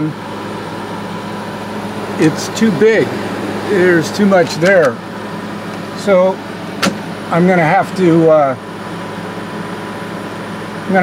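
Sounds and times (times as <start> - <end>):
air conditioner fan rushing: 0.0 - 11.0
faint hum: 0.0 - 11.0.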